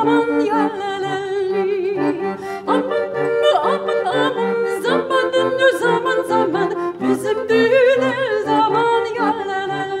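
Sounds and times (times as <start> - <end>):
barrel organ playing: 0.0 - 9.5
woman singing folk song: 0.0 - 10.0.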